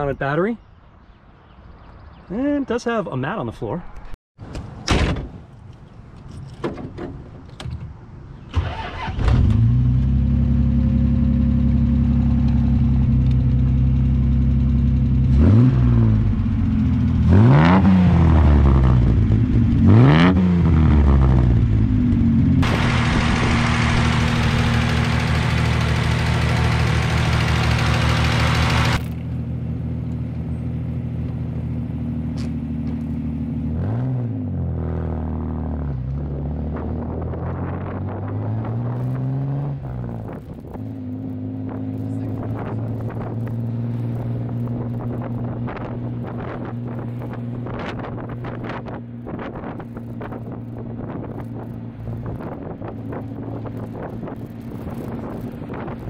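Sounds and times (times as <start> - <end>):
car engine starting and revving: 8.5 - 29.2, 32.3 - 56.0
loud steady rushing noise: 22.6 - 27.0.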